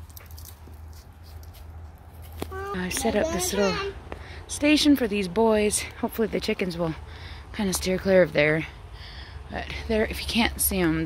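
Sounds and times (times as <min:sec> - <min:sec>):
dry brush and leaves rustling: 0:00.0 - 0:03.6.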